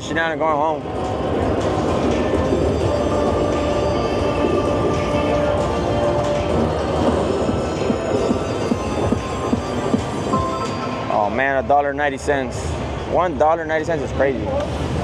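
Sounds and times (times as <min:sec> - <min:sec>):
slot machine music and effects: 0:02.1 - 0:11.7.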